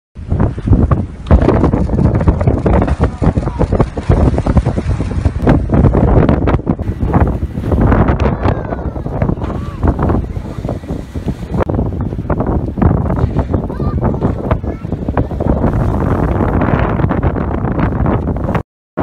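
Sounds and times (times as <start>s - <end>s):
strong wind buffeting microphone: 0.2s - 18.6s.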